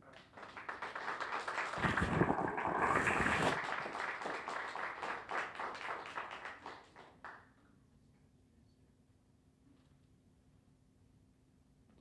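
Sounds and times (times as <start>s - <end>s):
audience applauding: 0.4s - 7.1s.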